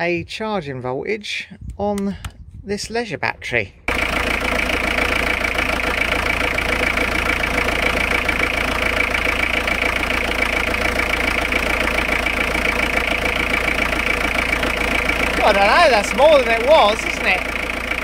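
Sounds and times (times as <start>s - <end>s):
engine idling: 3.9s - 18.0s.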